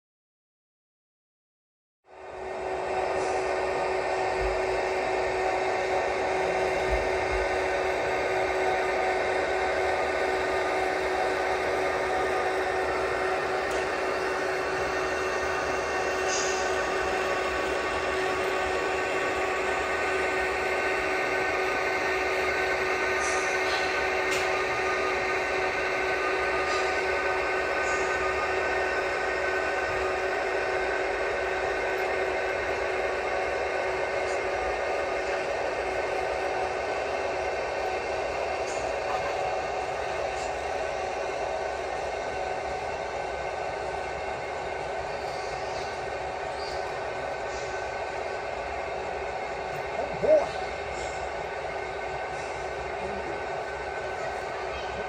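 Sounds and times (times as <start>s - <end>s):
model train mechanical hum: 2.1s - 55.0s.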